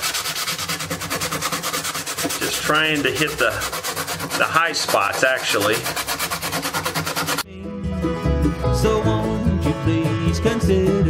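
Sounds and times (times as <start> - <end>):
hand sanding wood: 0.0 - 7.4.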